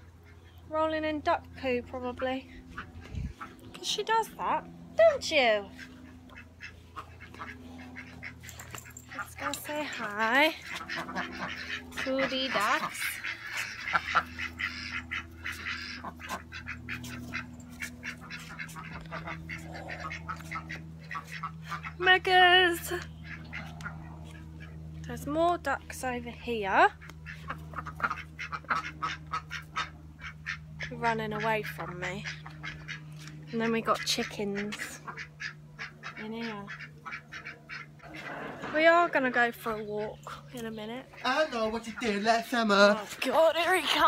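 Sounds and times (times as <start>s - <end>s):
ducks quacking: 0.0s - 44.0s
low steady hum: 0.0s - 44.0s.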